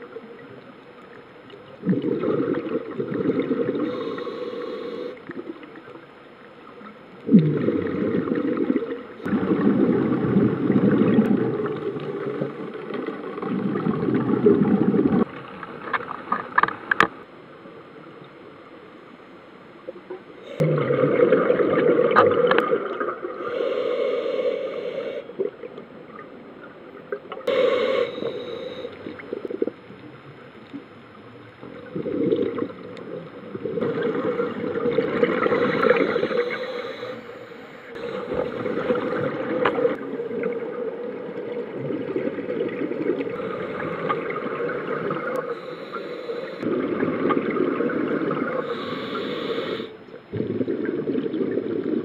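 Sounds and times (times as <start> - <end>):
bubbles gurgling underwater: 1.6 - 3.8, 7.2 - 15.3, 20.6 - 23.4, 31.6 - 36.5, 38.1 - 45.5, 46.6 - 48.8, 50.2 - 52.0
diver breathing through regulator: 3.8 - 5.2, 23.4 - 25.4, 27.5 - 29.1, 33.9 - 40.0, 45.4 - 46.7, 48.5 - 50.0.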